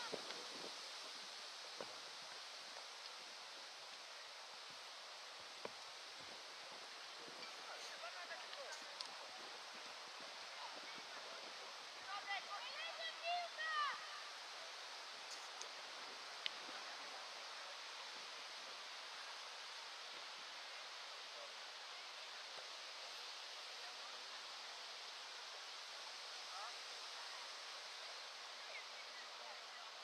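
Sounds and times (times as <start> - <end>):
outdoor hiss: 0.0 - 30.0.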